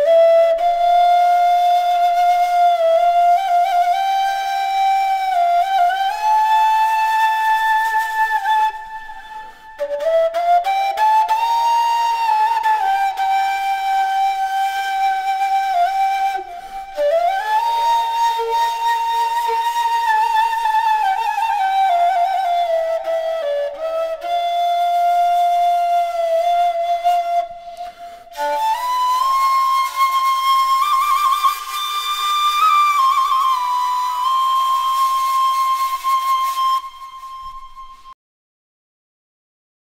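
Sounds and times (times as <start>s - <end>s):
flute playing slow melody: 0.0s - 38.2s.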